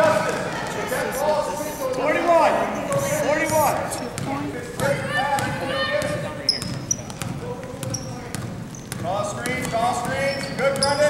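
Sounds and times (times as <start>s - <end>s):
basketball bouncing on wooden floor: 2.9s - 11.0s.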